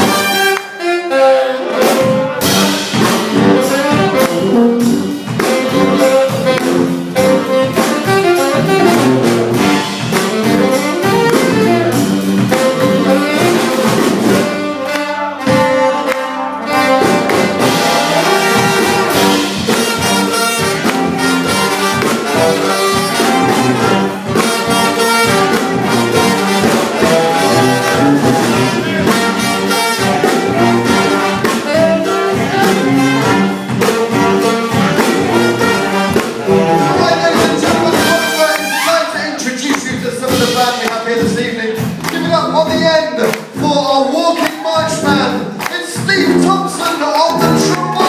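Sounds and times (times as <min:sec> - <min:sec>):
steady drum beat: 0:00.0 - 0:00.6, 0:01.6 - 0:48.0
brass band playing: 0:00.0 - 0:48.0.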